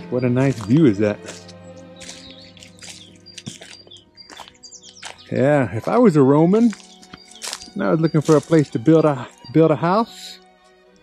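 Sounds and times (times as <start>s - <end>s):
small birds chirping: 0.0s - 10.4s
soft music of sustained tones: 0.0s - 11.0s.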